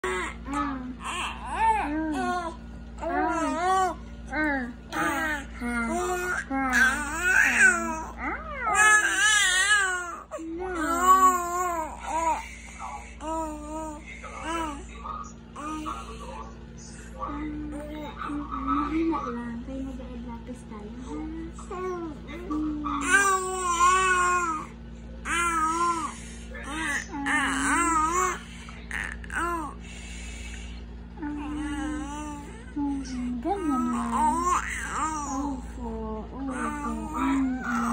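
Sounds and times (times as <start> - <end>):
infant cooing and babbling: 0.0 - 4.0, 4.9 - 12.4, 13.2 - 14.9, 15.6 - 16.1, 21.6 - 22.4, 23.0 - 29.8, 31.3 - 32.7, 33.4 - 37.9.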